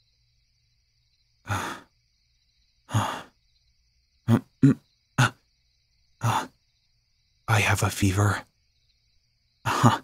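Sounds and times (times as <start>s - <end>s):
man sighing: 1.5s - 1.9s, 2.9s - 3.3s.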